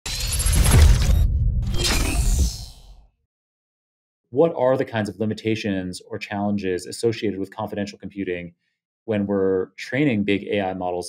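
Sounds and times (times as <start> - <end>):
glassy shattering sound effect: 0.0 - 3.0.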